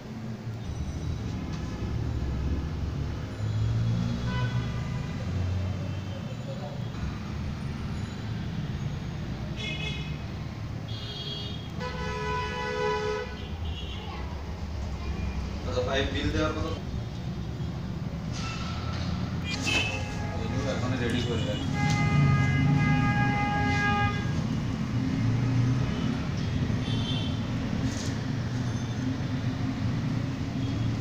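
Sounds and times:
street traffic rumbling: 0.0s - 31.0s
vehicle horns honking: 4.1s - 5.3s, 9.6s - 10.3s, 10.9s - 14.2s, 19.4s - 24.5s, 26.8s - 27.5s.

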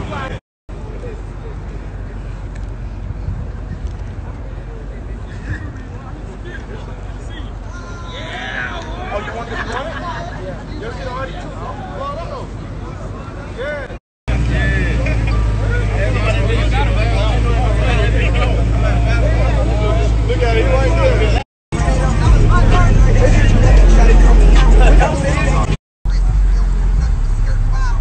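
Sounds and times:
car engines idling: 0.0s - 28.0s
crowd chatter: 0.0s - 28.0s.

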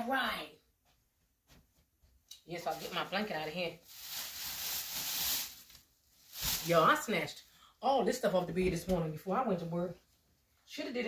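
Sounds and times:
fabric rustling: 2.6s - 7.3s.

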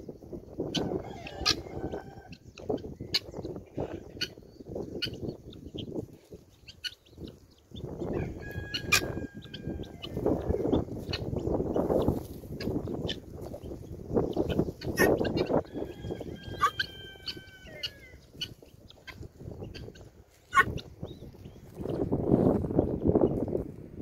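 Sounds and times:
guinea fowl pitched call: 0.6s - 5.9s, 6.6s - 20.9s
guinea fowl clicking calls: 4.1s - 5.9s, 6.6s - 7.4s, 8.1s - 20.9s.

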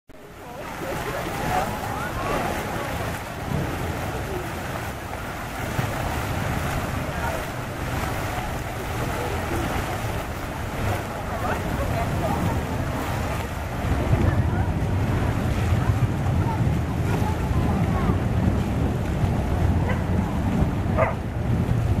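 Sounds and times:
fountain splashing into basin: 0.2s - 22.0s
wind buffeting microphone: 0.4s - 22.0s.

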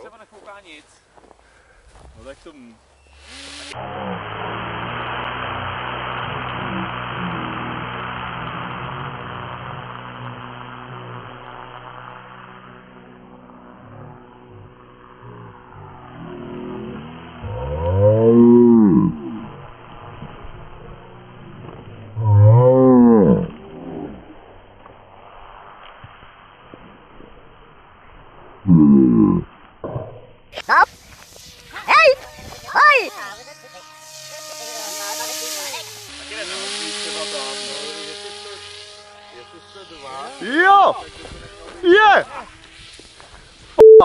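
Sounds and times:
model plane motor: 3.0s - 25.1s, 30.6s - 43.8s.

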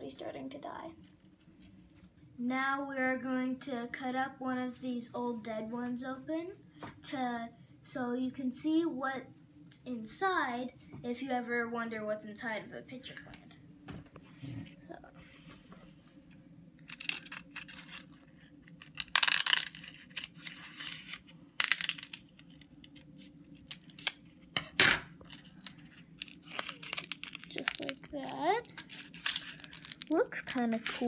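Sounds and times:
dry leaf crackling and tearing: 16.9s - 18.2s, 18.8s - 24.2s, 25.2s - 31.0s.

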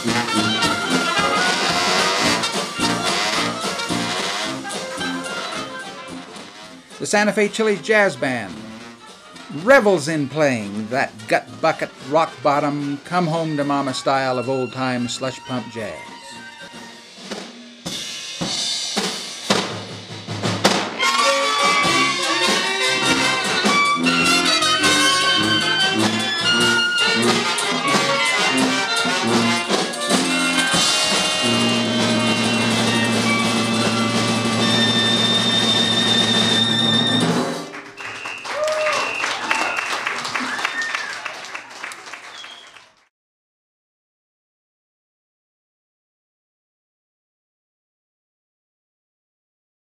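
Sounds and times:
dixieland jazz band playing: 0.0s - 17.3s, 20.8s - 37.8s
sliding pitches: 21.0s - 37.6s.

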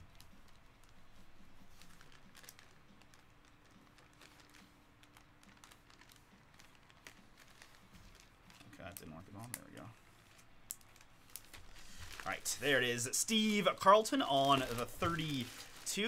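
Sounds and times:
plastic bag crinkling: 0.0s - 16.0s.

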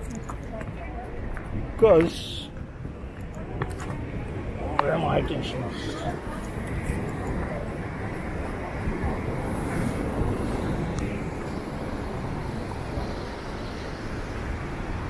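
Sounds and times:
wind buffeting microphone: 0.0s - 15.0s.

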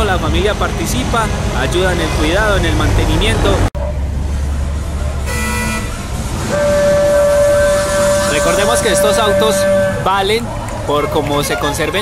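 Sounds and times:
low rumble of car engines: 0.0s - 12.0s
car horns honking: 5.2s - 12.0s.

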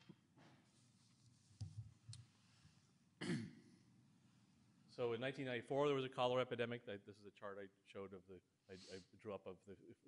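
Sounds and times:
man clearing throat: 3.2s - 3.7s.

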